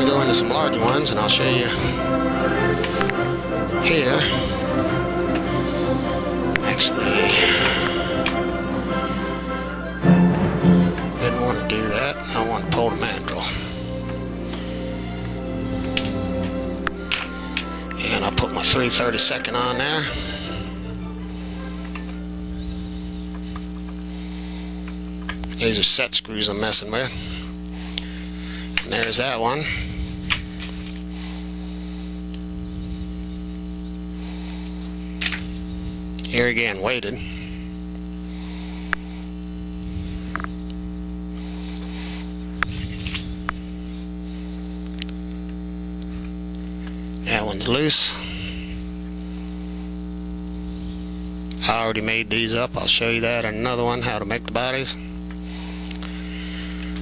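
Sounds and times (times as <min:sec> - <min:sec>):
electrical mains hum: 0:00.0 - 0:57.0.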